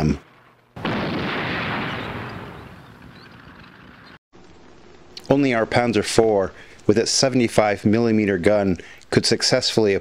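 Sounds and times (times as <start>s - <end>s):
heavy explosion blast: 0.0s - 4.2s.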